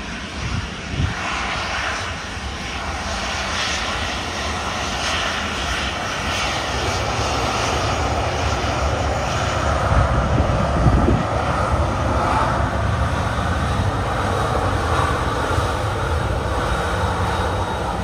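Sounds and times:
engine whine: 0:00.0 - 0:18.0
jet engines running: 0:00.0 - 0:18.0.

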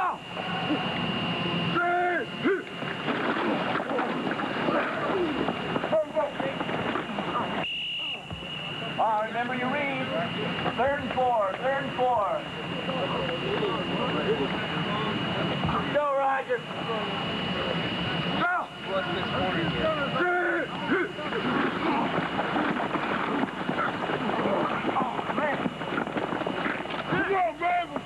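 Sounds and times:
thin high-pitched whine: 0:00.0 - 0:28.0
people shouting and calling out: 0:01.7 - 0:02.8, 0:18.4 - 0:18.8, 0:19.7 - 0:22.3, 0:27.0 - 0:28.0.

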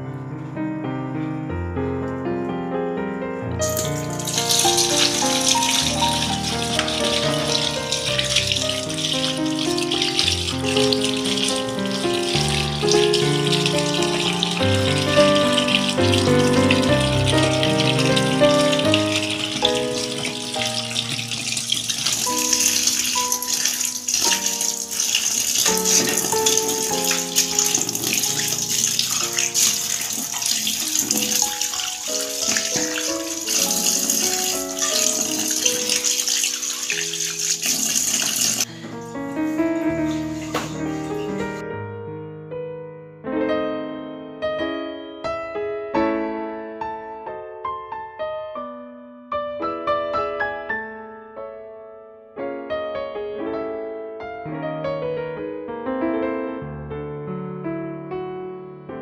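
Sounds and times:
background music: 0:03.6 - 0:37.9
running water splashing on shrimp: 0:03.6 - 0:41.6.

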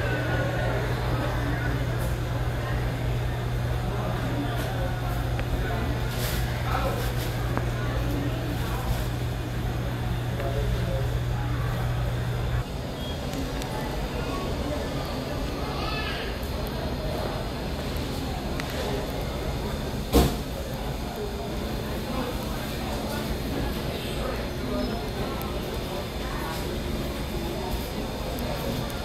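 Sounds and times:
faint voices: 0:00.0 - 0:29.0
low mechanical hum: 0:00.0 - 0:29.0.

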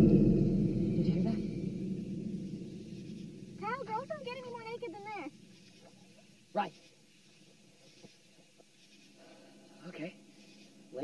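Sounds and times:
low rumble: 0:00.0 - 0:05.4.

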